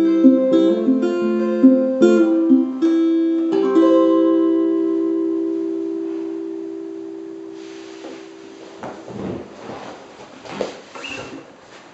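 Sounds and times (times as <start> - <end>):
guitar chord ringing: 0.0 - 9.1
knocks and rustling: 8.8 - 11.9.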